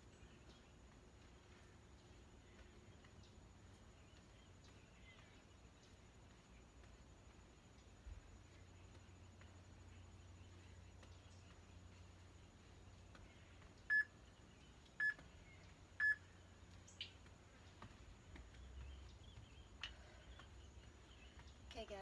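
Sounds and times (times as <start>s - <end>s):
high timer beeps: 16.0s - 16.2s.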